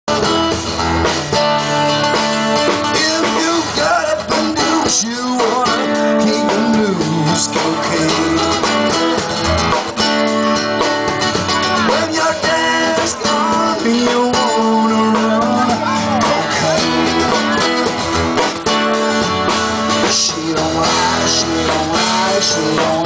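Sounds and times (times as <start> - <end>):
acoustic guitars strumming: 0.1 - 23.0
man singing into a microphone: 2.7 - 9.3, 11.8 - 17.9, 19.9 - 23.0.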